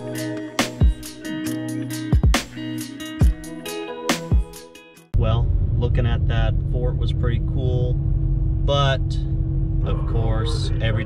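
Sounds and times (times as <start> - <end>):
guitar music: 0.0 - 5.1
road and engine rumble: 5.2 - 11.0
person talking: 9.8 - 11.0.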